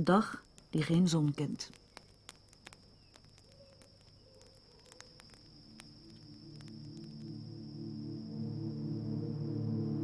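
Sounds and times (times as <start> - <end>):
high insect trill: 0.0 - 10.0
faint clicks: 0.3 - 7.4
soft music: 5.7 - 10.0.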